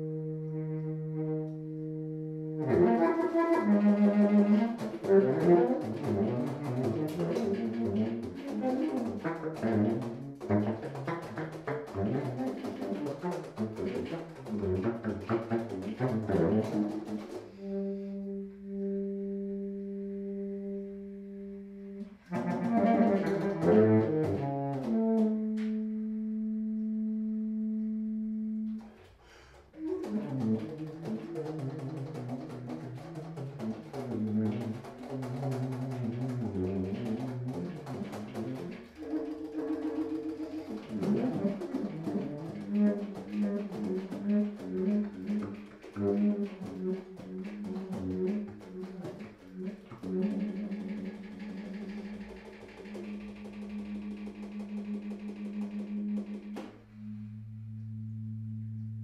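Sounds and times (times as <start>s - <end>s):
baritone saxophone playing: 0.0s - 59.0s.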